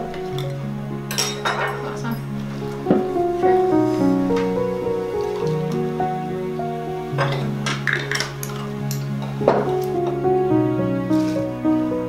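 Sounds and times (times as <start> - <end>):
background music: 0.0 - 12.0
knife clinking against dishes: 1.1 - 2.3.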